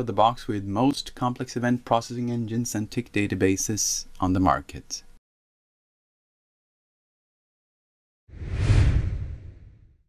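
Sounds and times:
whoosh with low rumble: 0:08.4 - 0:10.0.

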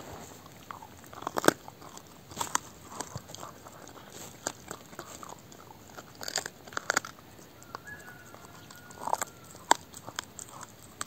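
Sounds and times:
dog chewing bone: 0:00.3 - 0:11.0.

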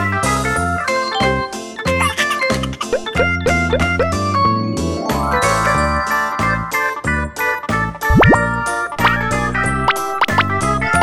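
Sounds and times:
cheerful background music: 0:00.0 - 0:11.0
twinkling sparkle chime: 0:04.9 - 0:07.0.

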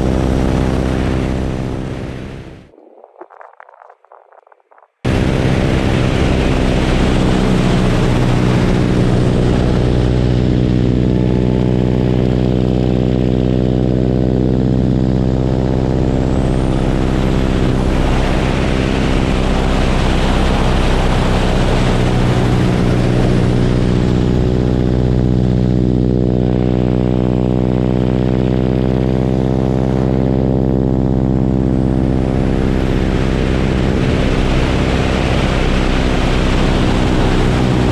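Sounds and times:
propeller aircraft engine: 0:00.0 - 0:02.8, 0:05.0 - 0:37.9
wind rushing: 0:02.6 - 0:10.0, 0:32.2 - 0:37.9.

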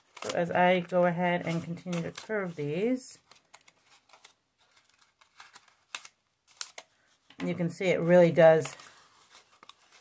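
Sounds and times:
paper ticks and rustles: 0:00.0 - 0:07.4, 0:08.3 - 0:10.0.

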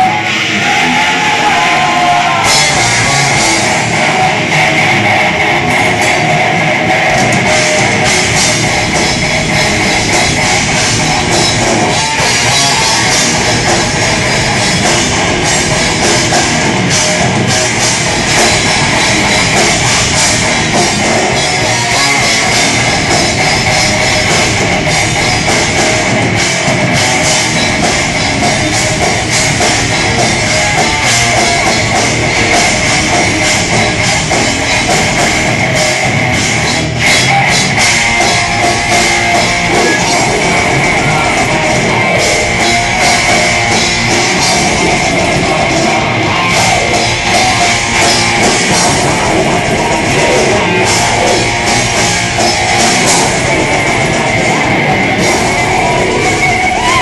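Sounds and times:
distorted electric guitars: 0:00.0 - 0:57.0
drum kit: 0:00.0 - 0:57.0
metal band playing live: 0:00.0 - 0:57.0.

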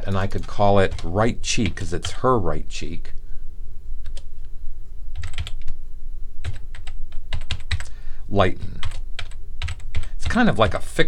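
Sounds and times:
computer keyboard typing: 0:00.0 - 0:01.8, 0:05.2 - 0:05.8, 0:06.4 - 0:07.9, 0:08.8 - 0:10.4
low steady hum: 0:00.0 - 0:11.0.

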